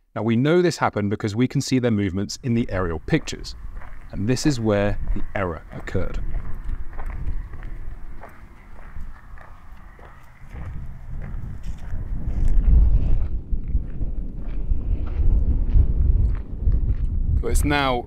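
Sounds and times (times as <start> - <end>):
wind buffeting microphone: 2.4 - 18.0
faint footsteps on rough ground: 2.5 - 17.8.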